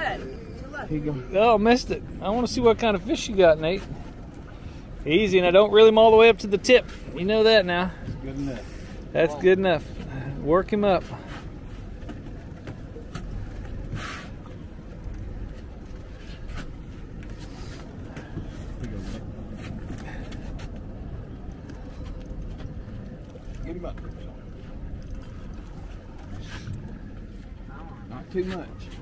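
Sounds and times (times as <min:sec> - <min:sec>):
boat low rumble: 0:00.0 - 0:29.0.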